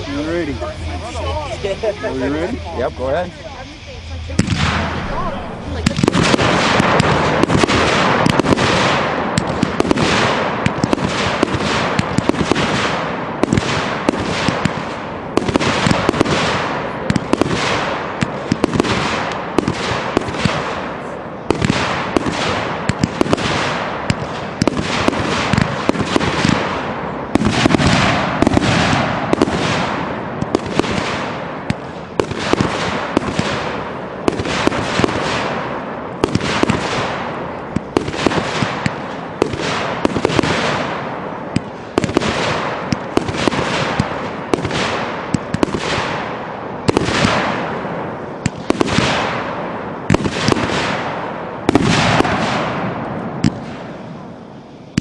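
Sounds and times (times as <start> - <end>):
firework launch thumps and bangs: 4.4 - 20.9, 21.5 - 54.0.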